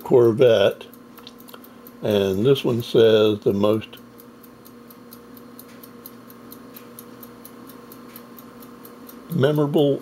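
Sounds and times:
low electrical hum: 0.0 - 10.0
quiet even ticking: 0.0 - 10.0.

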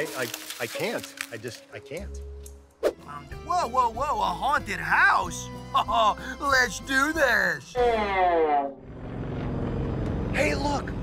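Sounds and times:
propeller airplane engine drone: 8.8 - 11.0.

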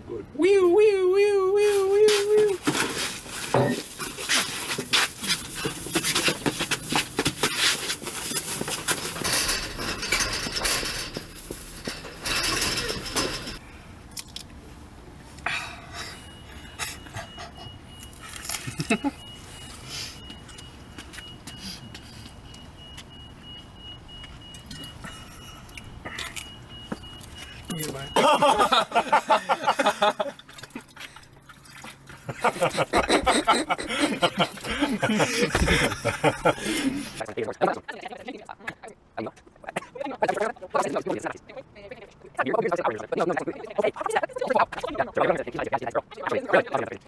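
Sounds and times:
person yelling: 0.4 - 2.6
knocks and rattling on chain-link fence: 4.8 - 13.6
car door warning chime beeping: 16.1 - 28.9.

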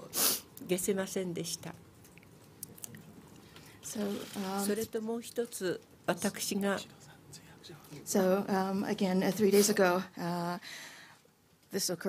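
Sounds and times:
woman speaking into a microphone: 3.8 - 6.9.

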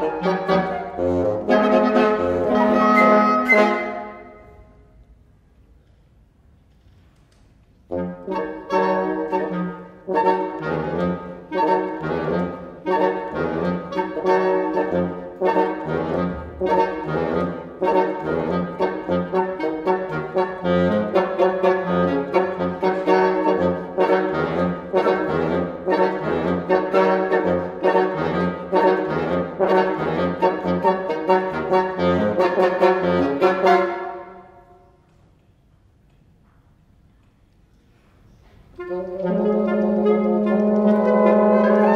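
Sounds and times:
woodwind quartet playing chords: 0.0 - 4.9, 7.8 - 35.0, 38.7 - 41.9.

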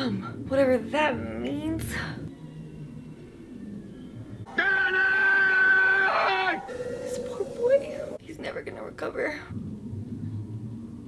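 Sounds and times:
lower cry: 2.3 - 8.2
man yelling: 4.5 - 6.6.

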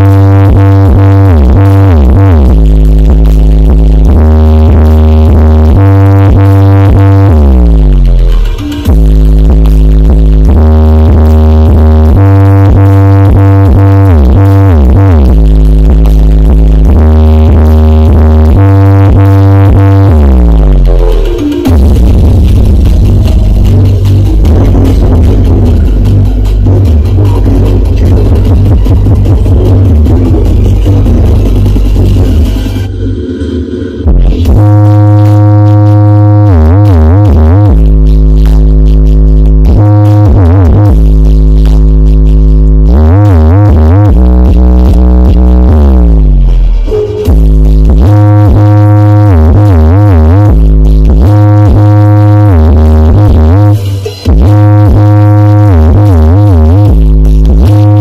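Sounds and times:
bass-heavy electronic dance music: 0.0 - 58.0.

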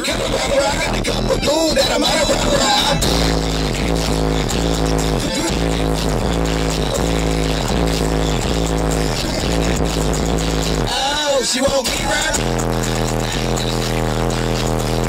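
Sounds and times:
electronic dance music: 0.0 - 15.0
falling bass sweep: 1.8 - 10.9, 12.4 - 15.0.

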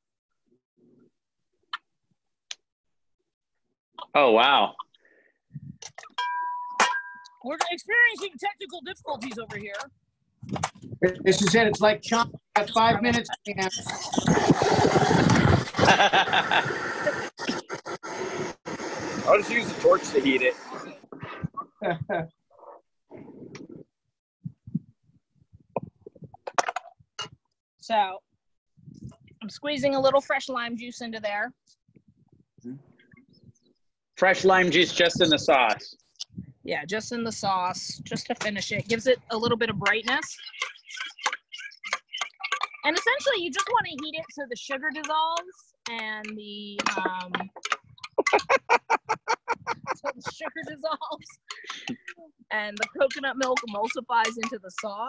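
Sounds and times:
person speaking: 7.5 - 9.9, 10.5 - 14.3, 34.4 - 55.0
hearty laughter: 15.7 - 17.2, 48.2 - 52.0.

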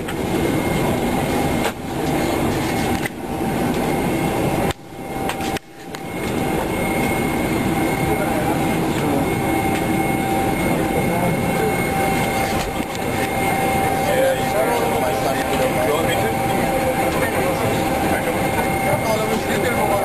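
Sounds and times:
airliner cabin hum: 0.0 - 20.0
steady tones: 0.0 - 20.0
murmuring voices: 6.3 - 20.0.

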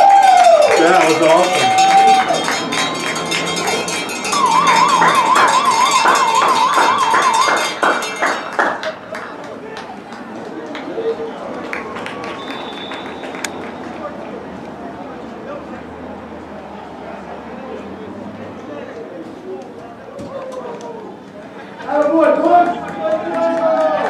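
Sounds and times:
crowd chatter: 0.0 - 24.0
cowbell rung rapidly: 0.3 - 8.6
warbling tone: 1.8 - 7.8.

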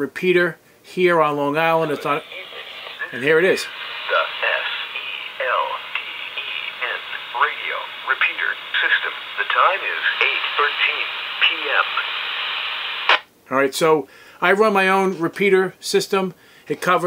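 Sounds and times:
radio static hiss: 1.4 - 13.3
speech over two-way radio: 1.6 - 13.2.

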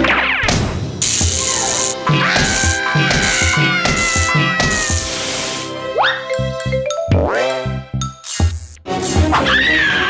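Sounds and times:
cartoon fox yowling: 2.1 - 5.1, 9.4 - 10.0.

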